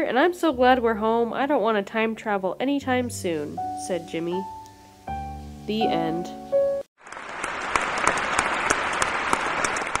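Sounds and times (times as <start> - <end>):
audience applause: 7.0 - 10.0.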